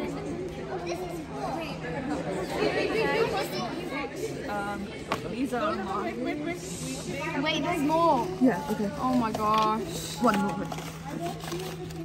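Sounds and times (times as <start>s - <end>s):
children chattering in echoing hall: 0.0s - 12.0s.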